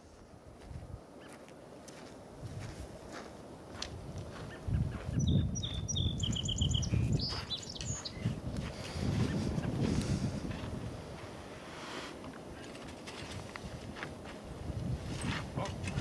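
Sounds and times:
small bird singing whistled notes: 4.7s - 8.4s.

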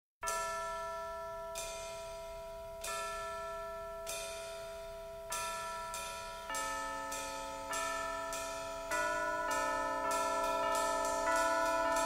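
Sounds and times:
bells ringing: 0.2s - 12.0s.

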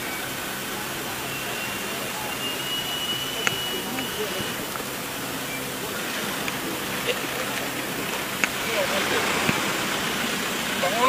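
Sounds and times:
outdoor hiss: 0.0s - 11.0s
vehicle engines idling: 0.0s - 11.0s.

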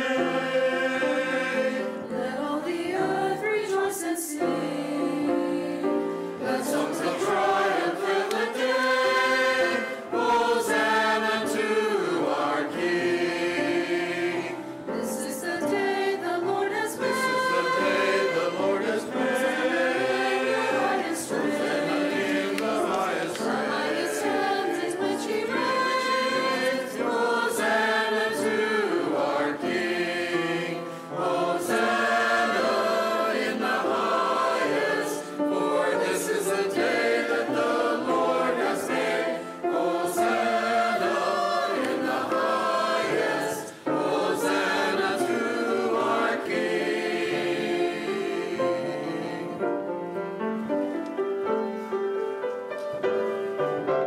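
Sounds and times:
choir singing a sacred piece: 0.0s - 54.0s.

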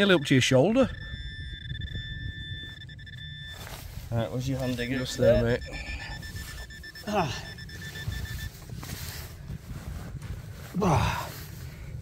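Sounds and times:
metal detector high tone: 0.0s - 9.4s.

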